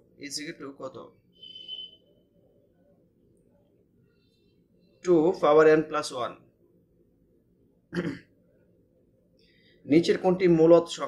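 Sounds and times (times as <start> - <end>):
man clearing throat: 7.9 - 8.3.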